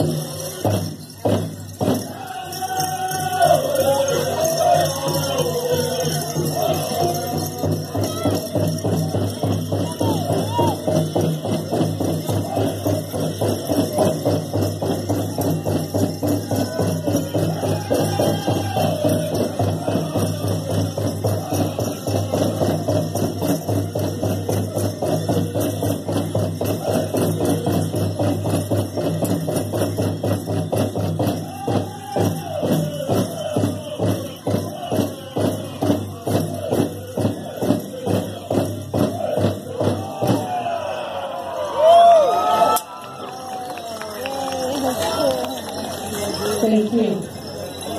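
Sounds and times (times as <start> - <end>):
steady drum beat: 0.0 - 40.8
group singing in high wavering voices: 0.0 - 42.0
dancers' bells jingling: 0.0 - 47.9.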